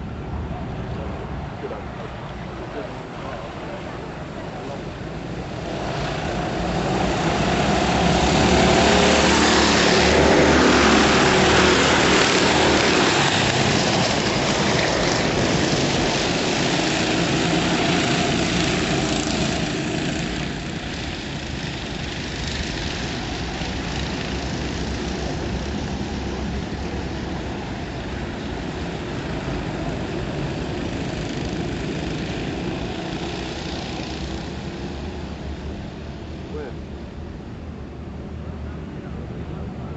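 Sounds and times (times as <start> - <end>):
kart engines racing: 0.1 - 37.2.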